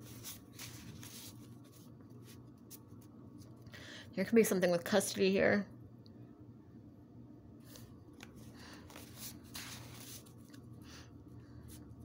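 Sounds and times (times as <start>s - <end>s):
paper stroking on paper: 0.0s - 3.1s, 8.6s - 11.0s
paper cards rustling: 0.0s - 3.6s, 7.7s - 11.0s
low steady hum: 0.0s - 12.0s.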